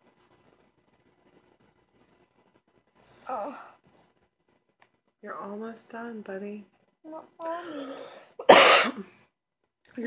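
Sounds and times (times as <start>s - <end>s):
loud short cough: 8.4s - 9.1s.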